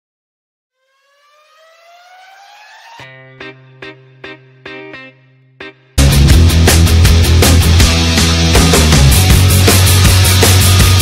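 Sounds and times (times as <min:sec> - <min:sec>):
siren-like rising tone: 0:00.7 - 0:03.4.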